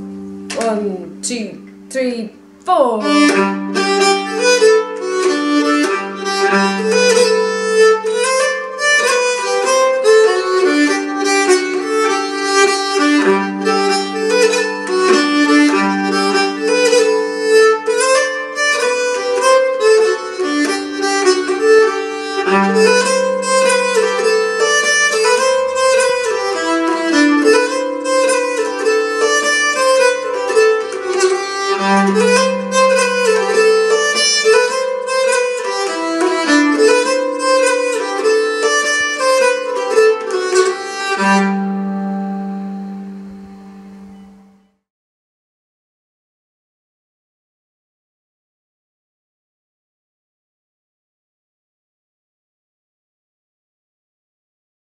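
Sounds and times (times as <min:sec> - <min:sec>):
bowed keyed fiddle jig: 0:03.0 - 0:44.7.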